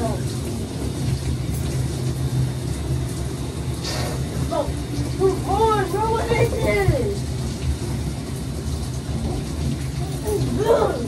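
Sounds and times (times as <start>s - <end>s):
shower running: 0.0s - 11.0s.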